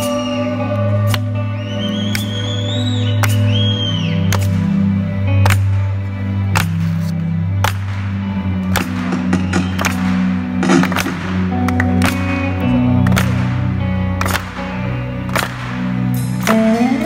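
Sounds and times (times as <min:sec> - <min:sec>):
bass and keyboard chords: 0:00.0 - 0:17.0
electric guitar: 0:00.0 - 0:17.0.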